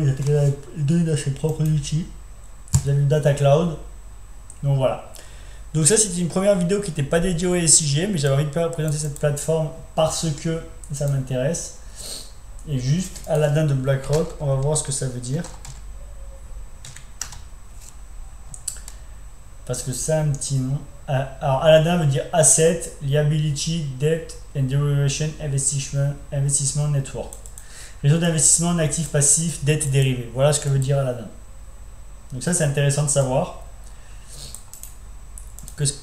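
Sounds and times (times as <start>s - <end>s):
computer keyboard clicks: 34.5s - 35.8s.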